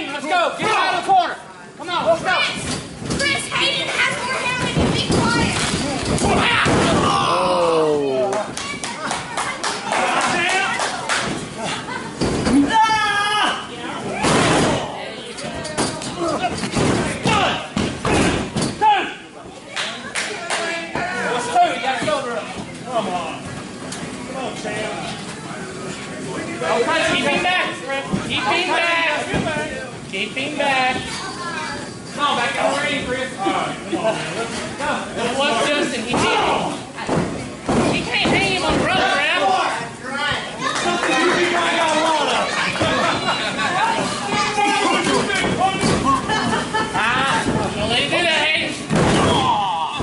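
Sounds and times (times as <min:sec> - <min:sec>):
people shouting: 0:06.2 - 0:08.2.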